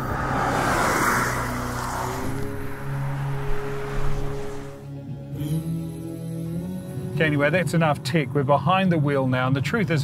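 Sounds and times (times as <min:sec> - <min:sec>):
car passing with tyre noise: 0:00.0 - 0:04.9
background music: 0:01.2 - 0:10.0.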